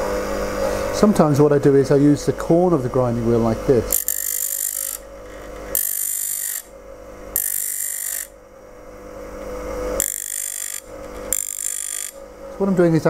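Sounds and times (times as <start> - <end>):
bench grinder motor humming: 0.0 - 13.0
chisel grinding on wheel: 3.8 - 6.7, 7.3 - 8.4, 9.4 - 12.2.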